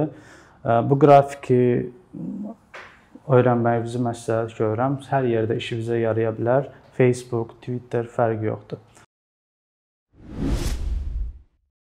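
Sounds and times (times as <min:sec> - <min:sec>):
whoosh sound effect: 0:10.2 - 0:11.4.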